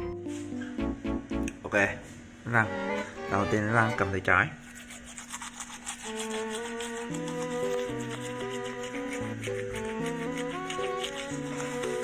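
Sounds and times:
soft background music: 0:00.0 - 0:04.4, 0:06.0 - 0:12.0
toothbrush scrubbing teeth: 0:04.6 - 0:12.0.

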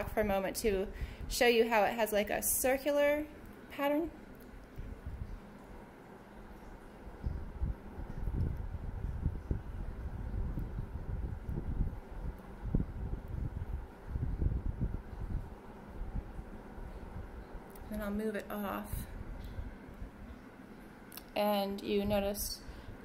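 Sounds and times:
faint steady hum: 0:00.0 - 0:23.0
low rumble: 0:07.1 - 0:18.1.

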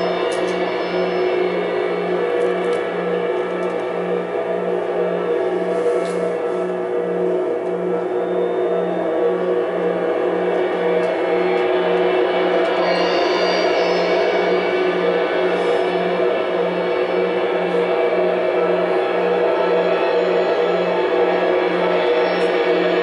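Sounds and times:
low pulsing tone: 0:00.0 - 0:23.0
ringing cymbal and guitar drones: 0:00.0 - 0:23.0.

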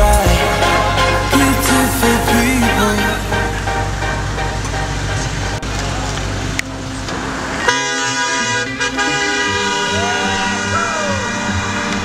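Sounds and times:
electronic dance music: 0:00.0 - 0:06.5, 0:07.2 - 0:12.0
loud steady tone: 0:00.0 - 0:12.0
street traffic noise: 0:00.0 - 0:12.0.

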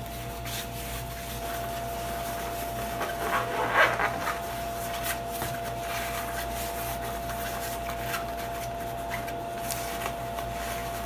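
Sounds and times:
cloth rustling and rubbing: 0:00.0 - 0:11.0.

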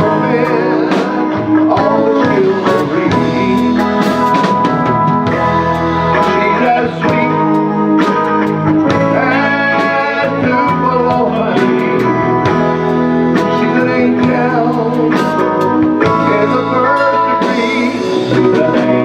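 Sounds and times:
man singing into microphone: 0:00.0 - 0:04.9, 0:06.1 - 0:19.0
live band playing: 0:00.0 - 0:19.0.

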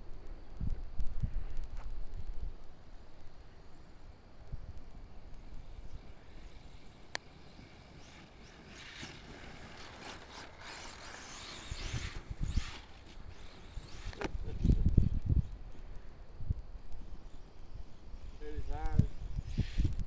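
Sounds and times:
electric motor whir: 0:05.7 - 0:15.5, 0:17.2 - 0:20.0.

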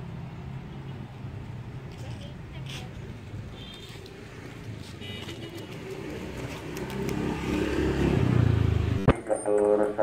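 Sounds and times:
vehicle engine approaching: 0:05.6 - 0:10.0.

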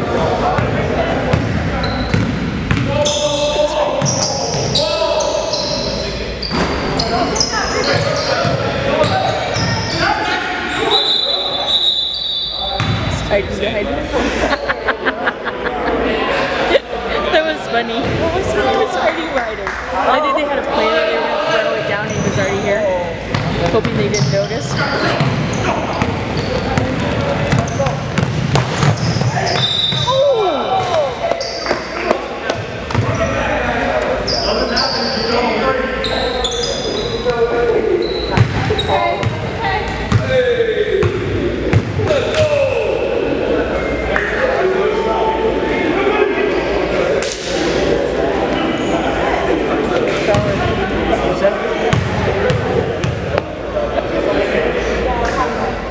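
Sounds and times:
murmur of voices: 0:00.0 - 0:55.9
sneakers squeaking: 0:00.6 - 0:13.4, 0:21.7 - 0:33.5, 0:34.1 - 0:40.4, 0:51.9 - 0:53.5
basketball bouncing: 0:01.3 - 0:02.9, 0:26.8 - 0:30.1, 0:51.9 - 0:53.4.

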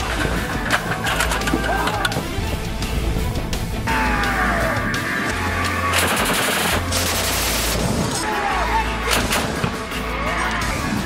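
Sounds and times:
background music: 0:00.0 - 0:11.0
automatic gunfire burst: 0:05.9 - 0:07.9.

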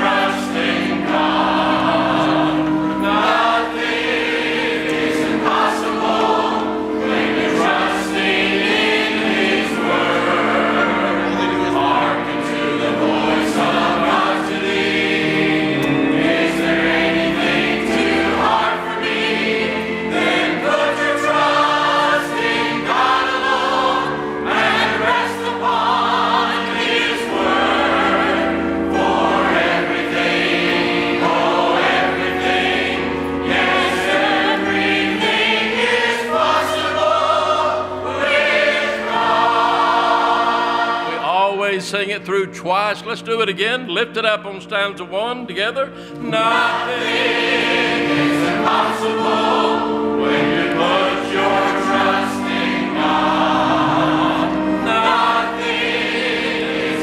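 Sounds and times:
congregation and choir singing: 0:00.0 - 0:57.0.

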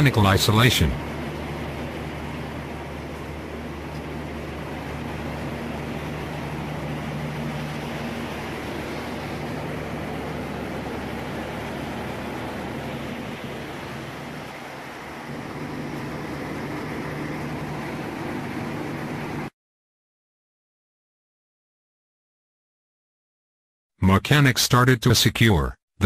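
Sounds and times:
drilling rig machinery drone: 0:00.0 - 0:19.5.

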